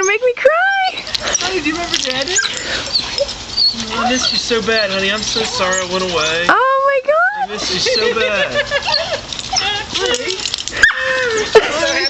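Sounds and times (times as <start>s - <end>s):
dog whining and yipping: 0.0s - 6.6s, 7.2s - 12.0s.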